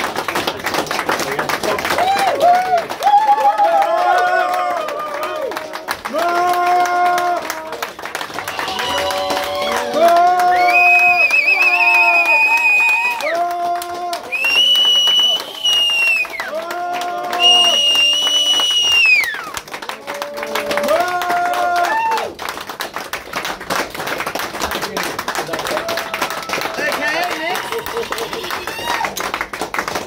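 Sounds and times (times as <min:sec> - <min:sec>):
audience cheering and clapping: 0:00.0 - 0:30.0.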